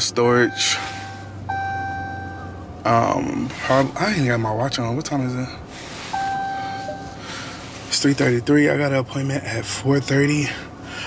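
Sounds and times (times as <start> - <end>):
steady high beep: 0.3 - 2.6, 6.1 - 7.4.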